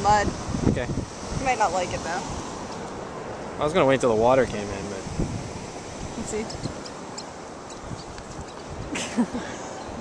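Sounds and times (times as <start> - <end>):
ocean surf: 0.0 - 10.0
wind: 0.0 - 10.0.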